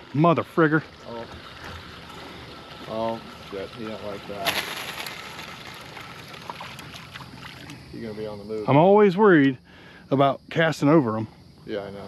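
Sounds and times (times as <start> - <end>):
wind and water noise: 0.0 - 12.0.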